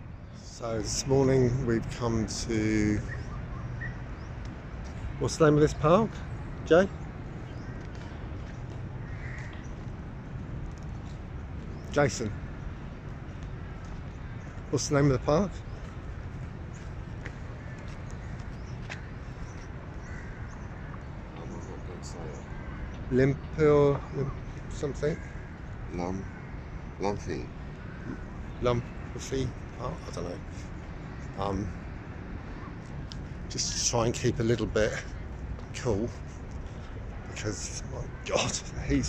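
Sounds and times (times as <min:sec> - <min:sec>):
birds calling: 0:00.0 - 0:39.0
faint bird chirps: 0:02.9 - 0:04.4.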